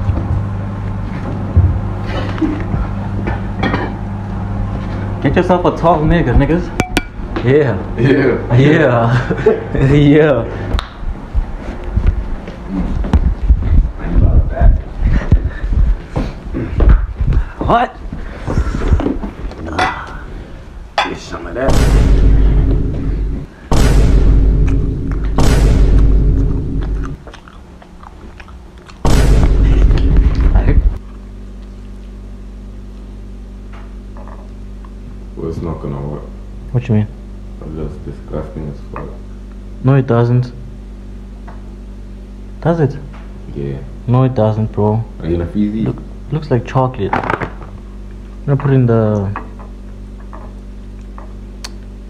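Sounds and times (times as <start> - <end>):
low electrical hum: 0.0 - 52.0
deep booming bass: 13.1 - 16.0, 21.6 - 27.2, 29.0 - 31.0
popcorn crunching and chewing: 26.0 - 29.1, 31.0 - 33.1.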